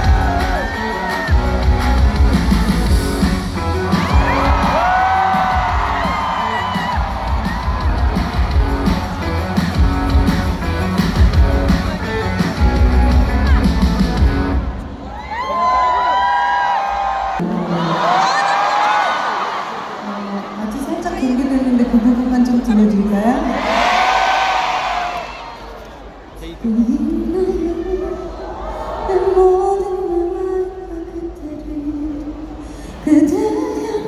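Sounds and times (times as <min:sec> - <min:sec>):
soft band accompaniment: 0:00.0 - 0:15.0
concert crowd cheering and screaming: 0:00.0 - 0:21.1, 0:23.4 - 0:26.2.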